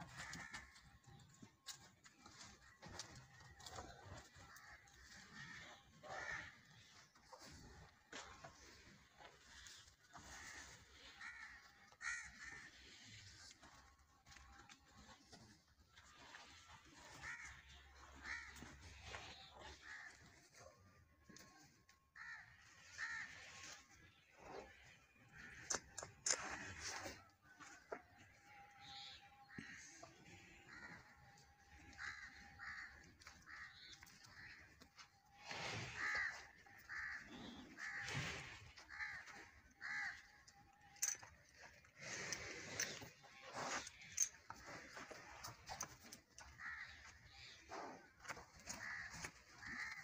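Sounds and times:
bird cawing: 10.4 - 12.8, 17.2 - 18.8, 22.2 - 23.3, 31.9 - 35.1, 35.9 - 40.4, 46.4 - 47.4.

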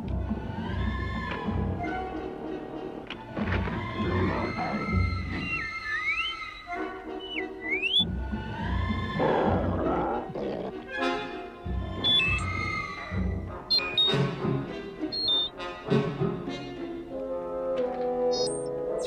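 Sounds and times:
orchestral music with brass: 0.0 - 5.8, 6.6 - 19.0
rising electronic whistles: 5.2 - 8.1, 12.0 - 12.7, 13.7 - 14.3, 15.1 - 15.5, 18.3 - 18.7.

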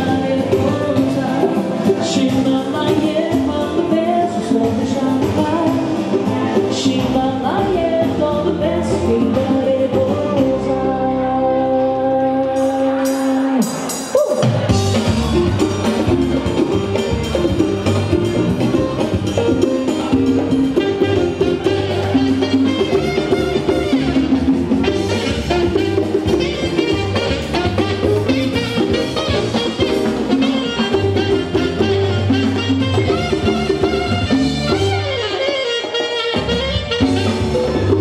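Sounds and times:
woman singing: 0.0 - 14.4
congas: 0.0 - 38.0
alto saxophone: 14.7 - 38.0.

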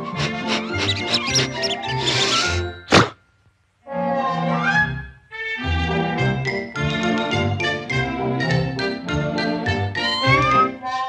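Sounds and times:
kitten mewing: 0.2 - 3.1
orchestral cartoon music: 4.0 - 11.0.

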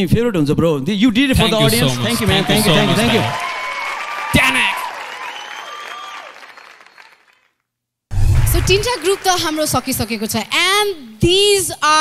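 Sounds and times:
voices: 1.3 - 3.4, 8.4 - 12.0
audience applauding: 1.4 - 7.5, 8.2 - 10.6.

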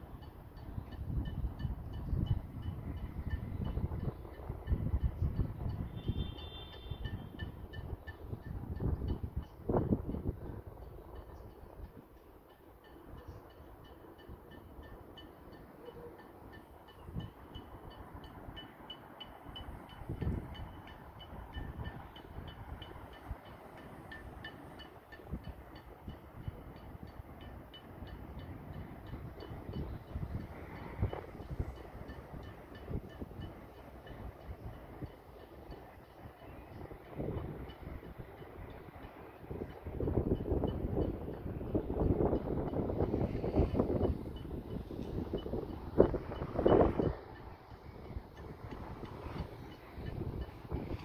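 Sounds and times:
distant bell ringing: 0.2 - 9.6.

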